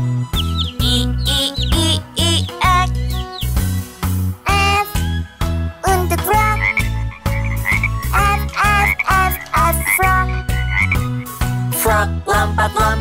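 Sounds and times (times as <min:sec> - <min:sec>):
children's song with bass beat: 0:00.0 - 0:13.0
cartoon frog croaking: 0:00.4 - 0:03.6, 0:04.4 - 0:05.0, 0:06.1 - 0:11.3.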